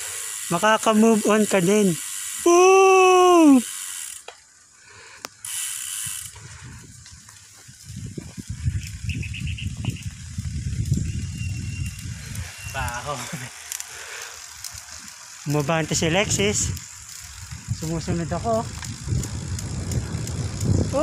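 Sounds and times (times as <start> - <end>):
bicycle freehub ticking: 0.0 - 21.0
wind rumble on microphone: 6.0 - 13.2, 15.7 - 21.0.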